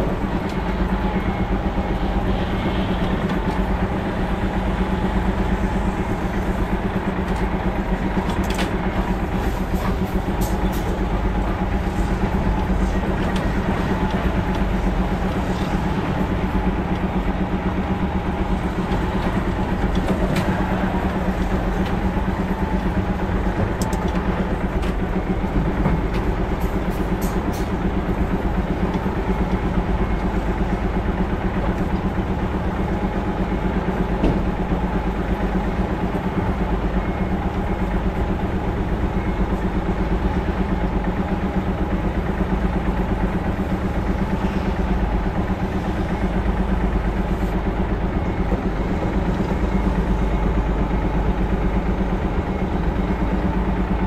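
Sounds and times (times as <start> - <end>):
truck diesel engine running: 0.0 - 54.0.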